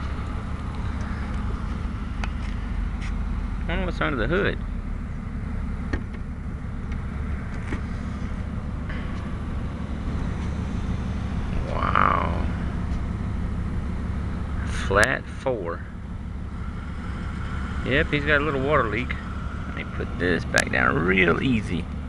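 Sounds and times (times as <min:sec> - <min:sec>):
vehicle engine idling: 0:00.0 - 0:22.0.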